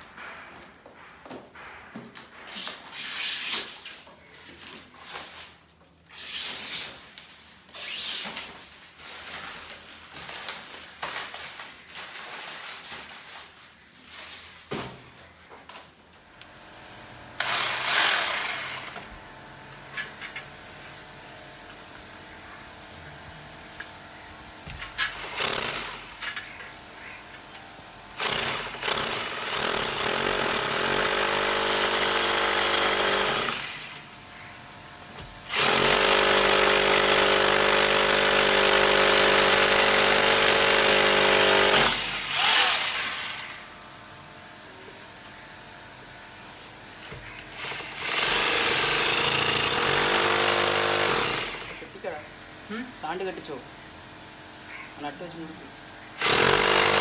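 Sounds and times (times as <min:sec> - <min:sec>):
hammer drill boring into wall: 0:17.4 - 0:19.0, 0:24.9 - 0:26.3, 0:28.2 - 0:34.0, 0:35.5 - 0:43.5, 0:47.4 - 0:51.8, 0:56.2 - 0:57.0.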